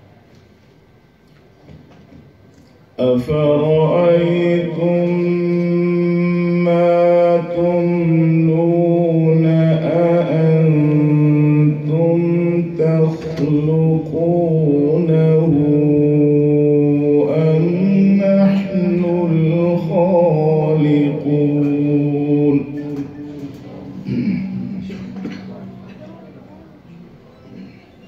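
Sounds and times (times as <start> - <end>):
man reciting melodically into a microphone: 3.0 - 26.4.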